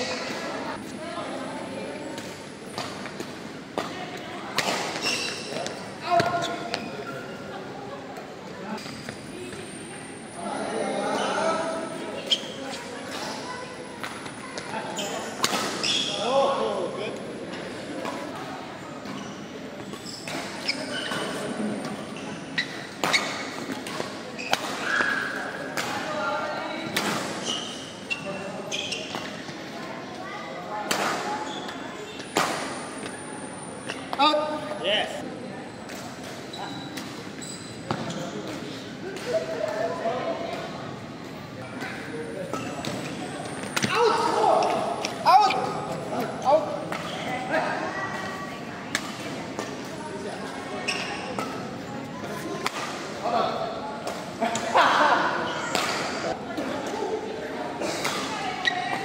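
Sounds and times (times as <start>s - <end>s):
voices of players: 0.0s - 59.0s
rackets striking shuttlecock: 15.4s - 15.8s.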